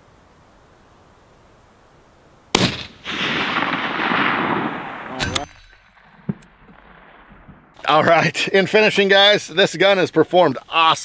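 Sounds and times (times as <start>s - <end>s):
rifle shot: 2.5s - 7.8s.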